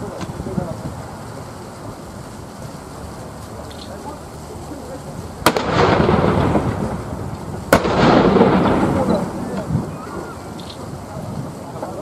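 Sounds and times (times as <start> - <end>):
field gun firing: 5.5 - 6.7, 7.7 - 9.6.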